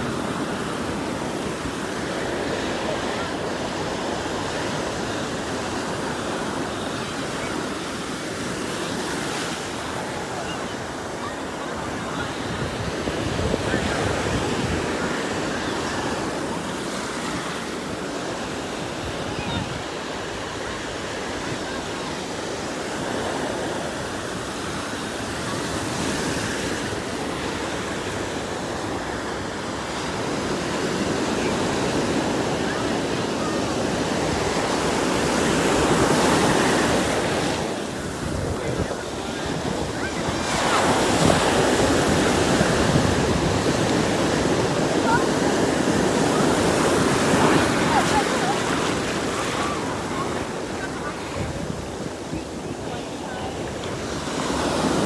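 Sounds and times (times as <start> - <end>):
ocean surf breaking: 0.0 - 55.0.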